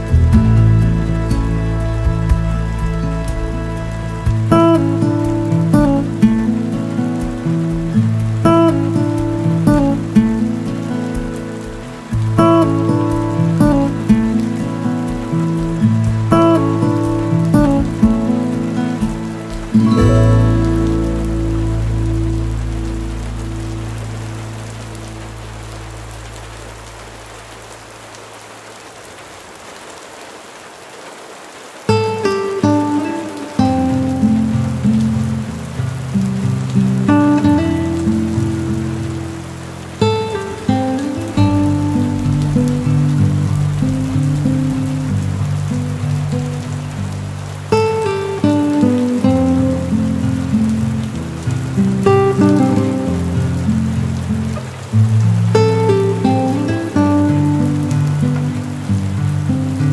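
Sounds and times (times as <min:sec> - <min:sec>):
soft instrumental music: 0:00.0 - 0:27.2, 0:31.9 - 0:59.9
rain on a windowpane: 0:00.0 - 0:59.9.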